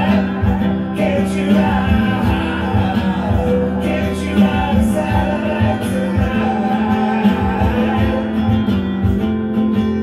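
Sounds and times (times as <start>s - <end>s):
guitar playing: 0.0s - 10.0s
low beat: 0.0s - 10.0s
man singing: 0.0s - 10.0s.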